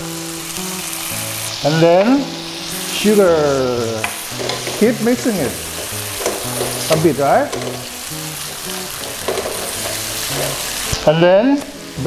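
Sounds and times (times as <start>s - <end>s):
meat sizzling in a wok: 0.0s - 12.0s
spatula stirring and scraping: 4.3s - 10.8s.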